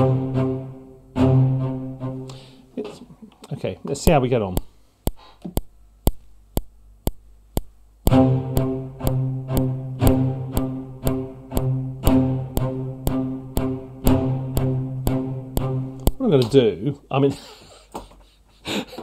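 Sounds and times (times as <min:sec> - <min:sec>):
short low cello notes: 0:00.0 - 0:02.7, 0:08.1 - 0:16.5
metronome clicking: 0:04.1 - 0:16.6.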